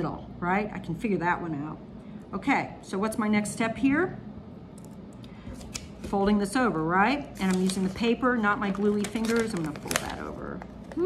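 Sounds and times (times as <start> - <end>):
paper crackling: 7.3 - 11.0.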